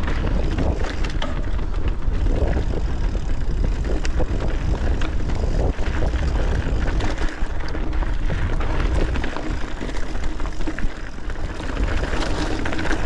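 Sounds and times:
bike rattling clicks and knocks: 0.0s - 13.0s
bike tyre noise: 0.0s - 13.0s
wind buffeting microphone: 0.0s - 13.0s.

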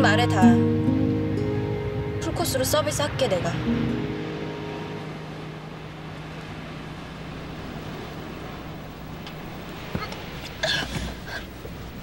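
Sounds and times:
background music: 0.0s - 6.2s
car interior rumble and hiss: 0.0s - 12.0s.

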